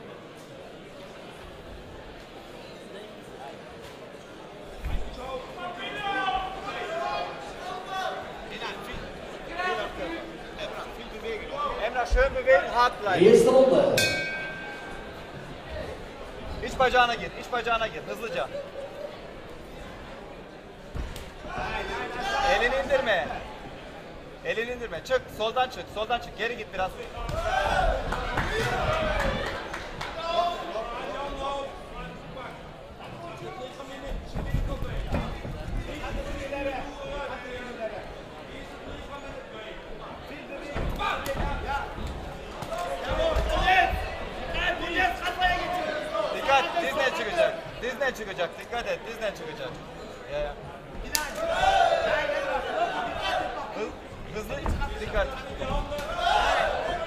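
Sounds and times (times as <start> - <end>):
fight ring bell ringing: 14.0 - 15.5.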